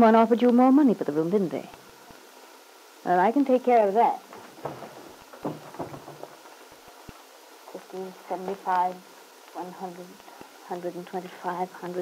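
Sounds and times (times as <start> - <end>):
crackling surface noise and hiss: 0.0 - 12.0
soft knocks: 4.3 - 6.6.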